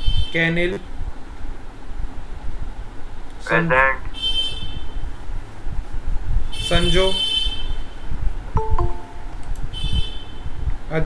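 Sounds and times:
two-tone notification chime: 8.6 - 9.4.

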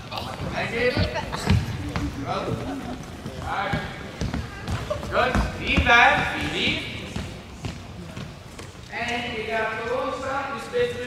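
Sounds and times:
balls bouncing on hall floor: 0.0 - 8.9
faint background voices: 0.0 - 9.2.

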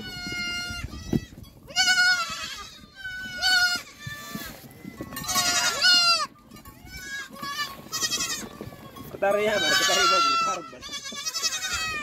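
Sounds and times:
goats bleating: 0.0 - 12.0.

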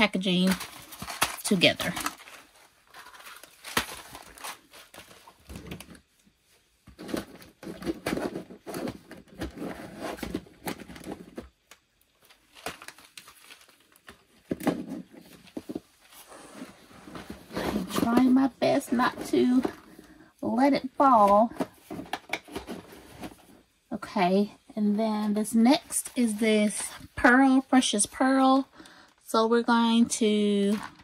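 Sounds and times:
cardboard boxes crinkling and tapping: 0.2 - 6.1, 6.8 - 16.0.

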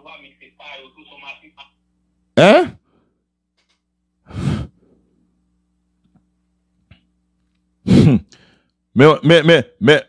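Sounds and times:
person sighing: 4.3 - 4.8
faint breath: 8.3 - 8.8.

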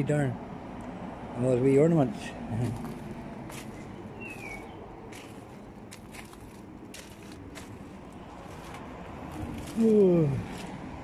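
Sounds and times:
low hum of road traffic: 0.0 - 11.0
footsteps on paved path: 2.5 - 11.0.

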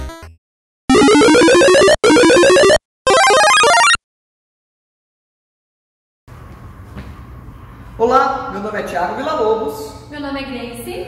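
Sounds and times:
electronic video game sound effects: 0.9 - 4.0.

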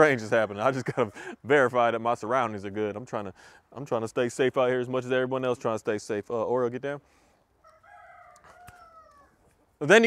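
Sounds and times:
faint rooster crowing: 7.6 - 9.5.

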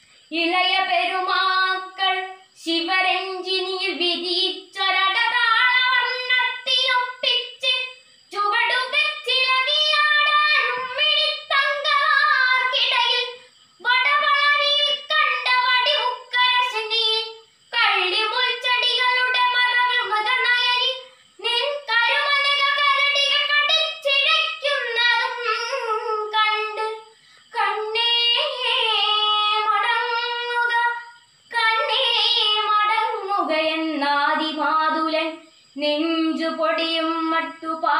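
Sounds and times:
girl singing unaccompanied: 0.0 - 37.9.

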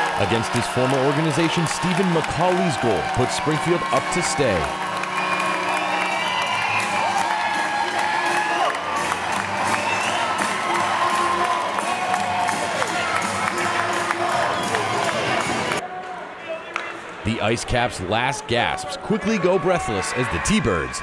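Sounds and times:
music playing: 0.0 - 15.8
crowd cheering and shouting: 0.0 - 21.0.

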